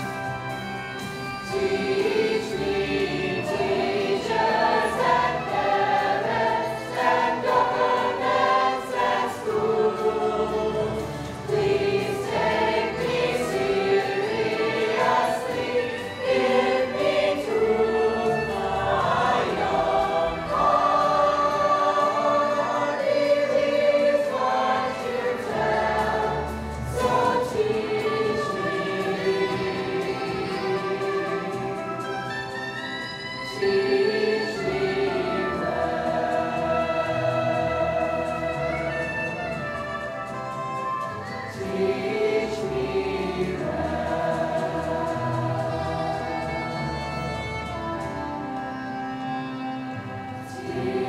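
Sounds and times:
youth choir singing: 0:01.2 - 0:32.1, 0:33.5 - 0:39.6, 0:41.4 - 0:47.8, 0:50.4 - 0:51.0.

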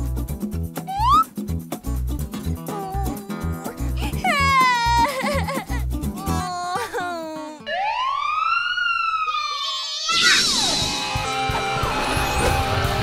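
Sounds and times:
whistle-like wail: 0:00.9 - 0:01.3, 0:07.7 - 0:12.9
busy music with siren-like glides: 0:07.6 - 0:09.7, 0:10.6 - 0:13.0.

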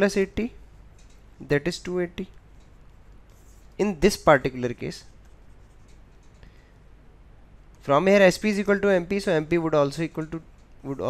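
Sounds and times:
low room hiss: 0:00.0 - 0:11.0.

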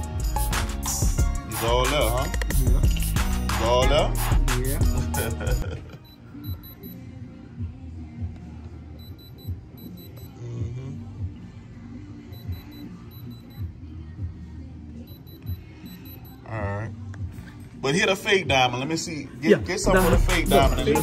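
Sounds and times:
background music with a beat: 0:00.0 - 0:18.7, 0:19.5 - 0:21.0
short high beeps: 0:06.1 - 0:07.0, 0:12.3 - 0:13.6, 0:15.1 - 0:16.4.

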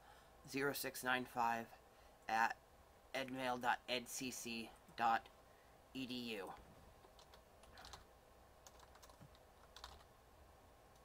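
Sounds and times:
computer keyboard and mouse clicks: 0:07.0 - 0:10.1.

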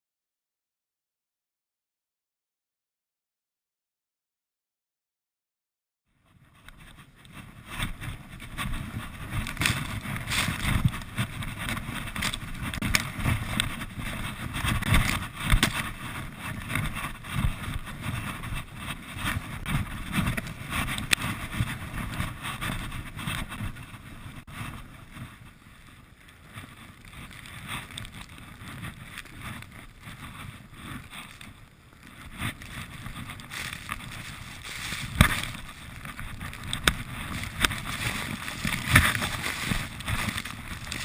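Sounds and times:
wind buffeting microphone: 0:06.2 - 0:41.0
skis hissing through snow: 0:33.3 - 0:36.4, 0:37.3 - 0:41.0.

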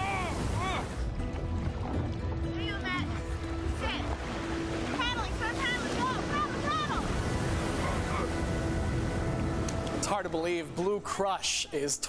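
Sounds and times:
ocean surf: 0:00.0 - 0:01.8, 0:02.4 - 0:11.4
wind over water: 0:00.0 - 0:10.2.

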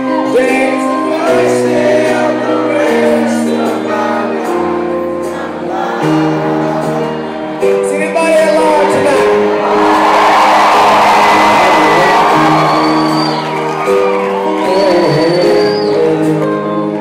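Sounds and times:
country band sustained chords: 0:00.0 - 0:17.0
audience cheering and whooping: 0:09.4 - 0:15.9
long high whistles: 0:10.8 - 0:16.0.

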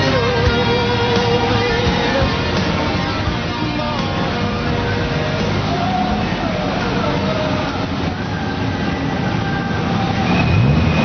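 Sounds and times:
engine revving: 0:00.0 - 0:11.0
road and wind noise: 0:00.0 - 0:11.0
vehicle engines running: 0:00.0 - 0:11.0.

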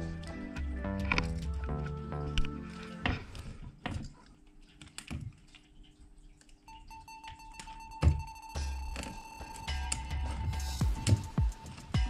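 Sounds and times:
background music with held tones: 0:00.0 - 0:03.8, 0:06.7 - 0:12.0.

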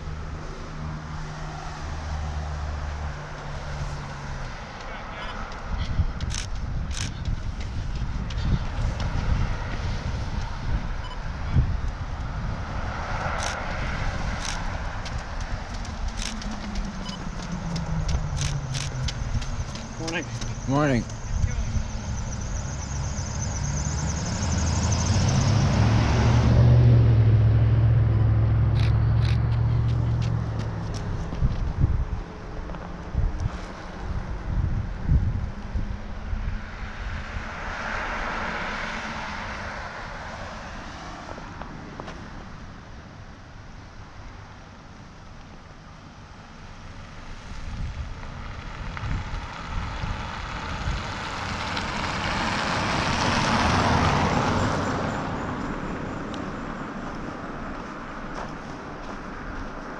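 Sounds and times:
pickup truck passing: 0:00.0 - 0:32.0, 0:47.2 - 0:59.9
car approaching: 0:00.0 - 0:59.9.

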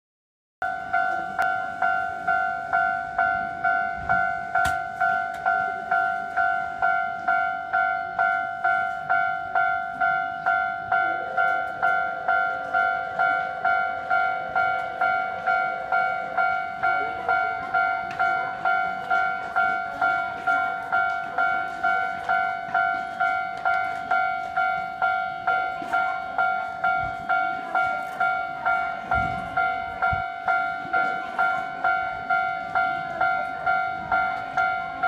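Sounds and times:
level crossing warning bell: 0:00.6 - 0:35.0.

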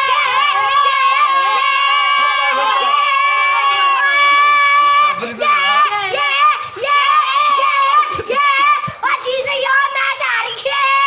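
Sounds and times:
boys shouting high-pitched calls: 0:00.0 - 0:11.0.

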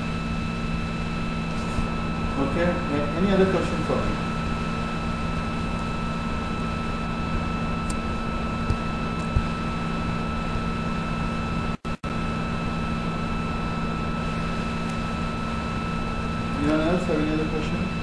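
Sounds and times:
background hum and hiss: 0:00.0 - 0:18.0.

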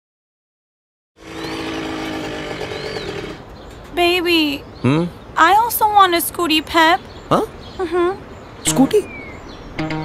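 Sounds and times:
scooter engine humming: 0:01.2 - 0:03.6.

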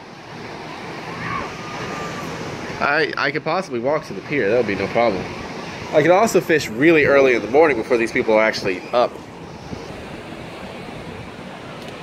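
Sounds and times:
surf washing: 0:00.0 - 0:12.0
wind: 0:00.0 - 0:12.0
wind noise on microphone: 0:09.3 - 0:12.0.

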